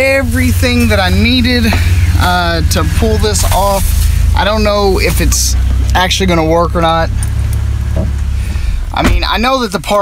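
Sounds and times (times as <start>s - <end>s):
car engine and road hum: 0.0s - 10.0s.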